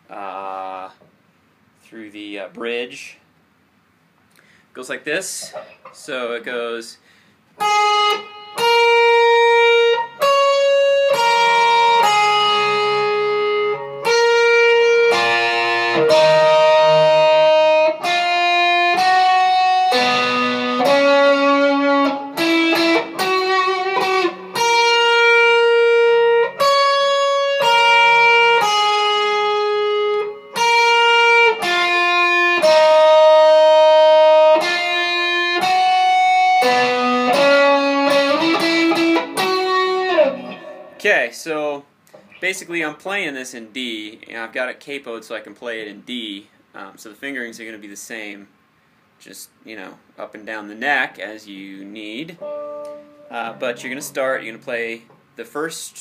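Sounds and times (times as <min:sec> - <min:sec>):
electric guitar riff: 0:07.6 - 0:41.3, 0:52.3 - 0:55.6.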